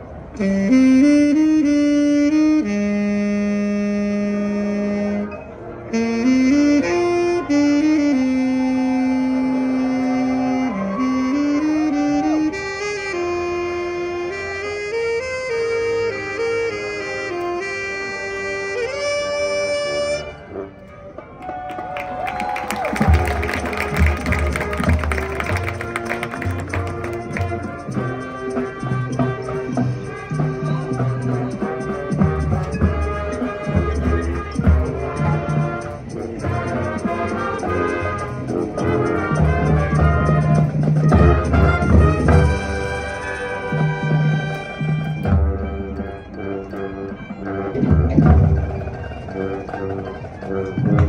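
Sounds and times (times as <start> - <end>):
marching band holding long note: 0.0 - 51.0.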